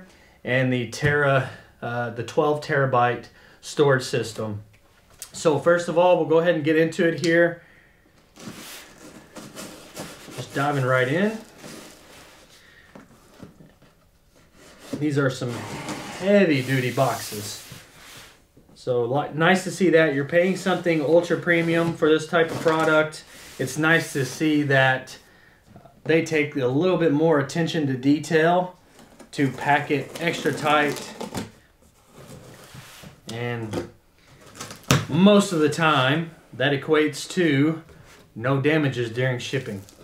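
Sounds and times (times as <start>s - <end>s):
cardboard rustling: 8.3s - 18.4s, 28.8s - 33.2s, 39.5s - 40.0s.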